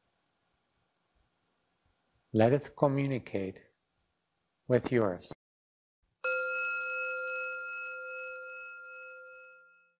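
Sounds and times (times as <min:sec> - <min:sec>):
meditation bell ringing: 0:06.2 - 0:10.0.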